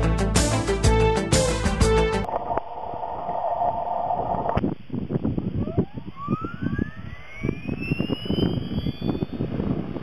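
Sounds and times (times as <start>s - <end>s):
wind buffeting microphone: 3.6s - 10.0s
model helicopter whine rising: 5.4s - 10.0s.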